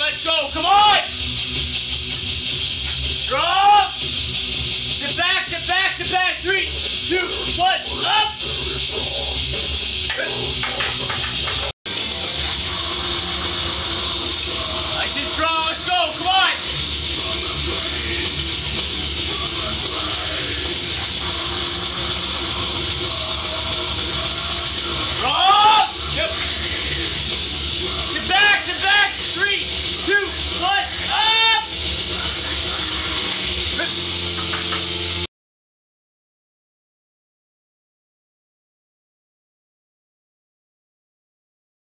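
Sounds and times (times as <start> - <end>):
steady hiss: 0.0 - 35.3
people shouting wordless calls: 7.2 - 8.4, 25.2 - 26.4, 28.0 - 31.8.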